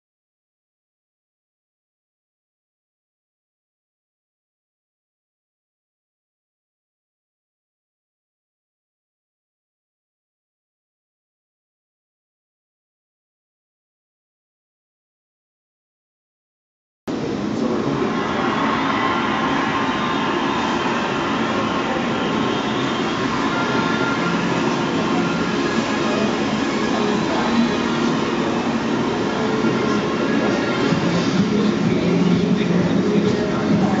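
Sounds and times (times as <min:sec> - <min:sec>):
din of visitors: 0:17.1 - 0:34.0
faint music: 0:17.1 - 0:34.0.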